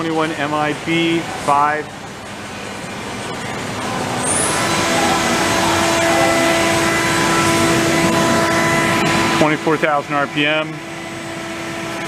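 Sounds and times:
machine spindle whine: 0.0s - 12.0s.

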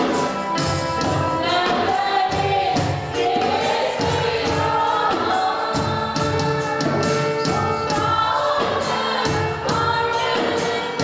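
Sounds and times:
woman singing into microphone: 4.1s - 11.0s.

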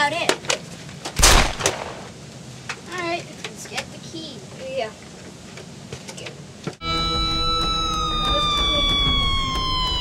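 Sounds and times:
loud gunshot bang: 1.2s - 2.1s.

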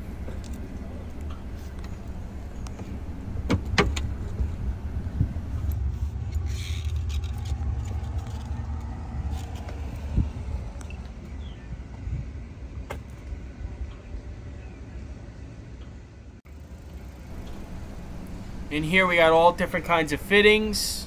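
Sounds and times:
steady low rumble: 0.0s - 16.4s, 17.0s - 21.0s.

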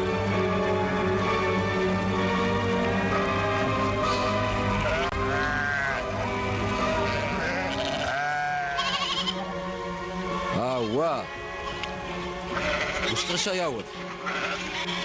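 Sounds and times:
background music with held notes: 0.0s - 15.0s
sheep bleating: 2.8s - 9.6s, 10.6s - 13.4s, 14.0s - 15.0s.

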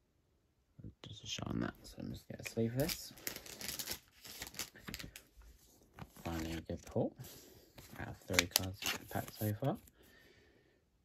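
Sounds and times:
plastic card sleeve crinkling: 2.2s - 10.0s.

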